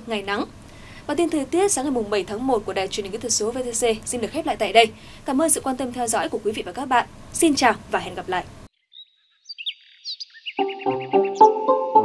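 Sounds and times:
bird chirps: 0:08.8 - 0:11.6.

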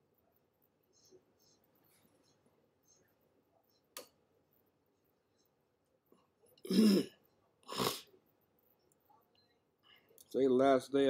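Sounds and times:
man clearing his throat: 0:06.7 - 0:07.1.

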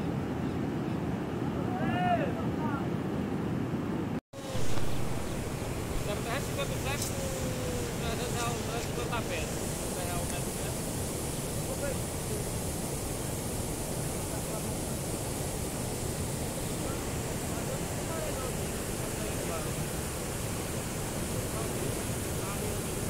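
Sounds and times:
water rushing over spillway: 0:04.4 - 0:23.0.

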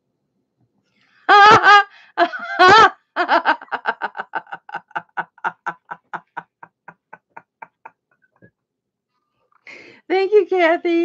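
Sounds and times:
woman laughing heartily: 0:01.3 - 0:08.1.

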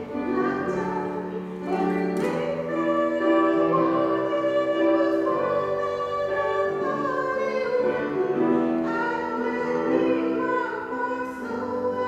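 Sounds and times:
grand piano accompaniment: 0:00.0 - 0:12.0
woman singing: 0:00.0 - 0:12.0.

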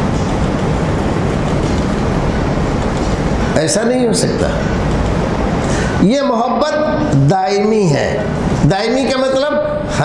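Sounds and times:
loud rumbling noise: 0:00.0 - 0:10.0.

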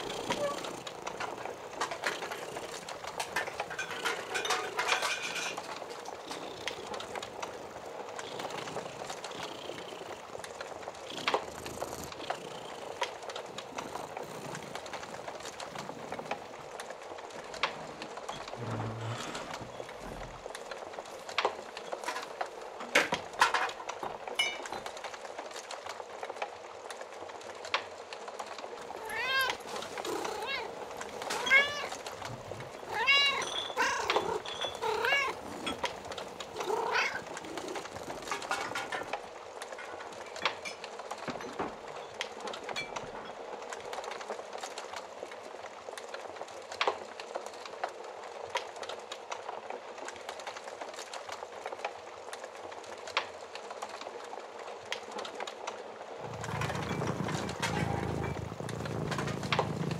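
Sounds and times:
crackling fire with pops: 0:00.0 - 0:59.9
cat meowing: 0:28.9 - 0:35.8, 0:36.5 - 0:37.5.

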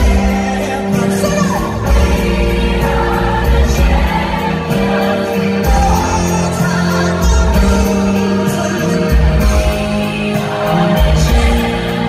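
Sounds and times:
man singing lead: 0:00.0 - 0:03.8, 0:04.4 - 0:12.0
live rock band playing: 0:00.0 - 0:12.0.

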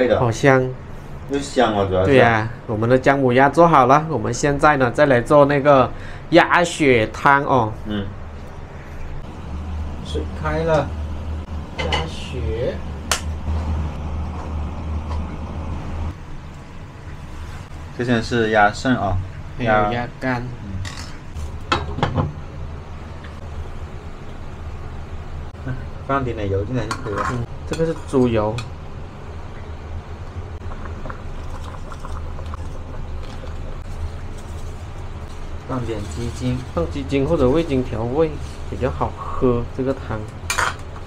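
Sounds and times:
soup boiling in a wok: 0:30.6 - 0:34.3
water boiling in a pan: 0:30.6 - 0:40.1.

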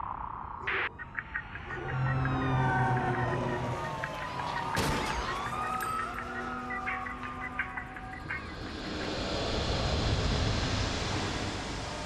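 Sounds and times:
thin tones sliding downward: 0:01.4 - 0:12.0.

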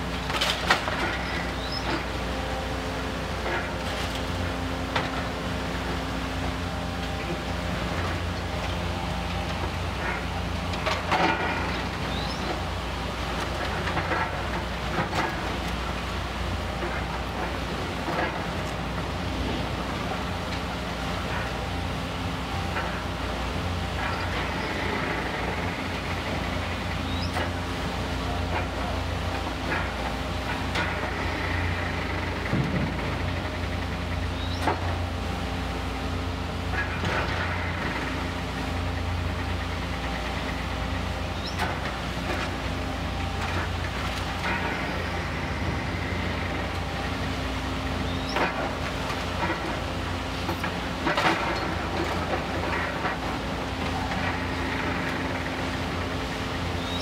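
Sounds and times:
diesel engine humming: 0:00.0 - 0:57.0.

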